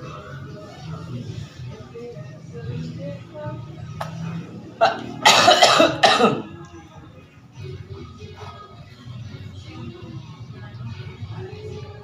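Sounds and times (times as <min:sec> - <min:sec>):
faint background music: 0:00.0 - 0:12.0
person coughing: 0:04.8 - 0:06.5.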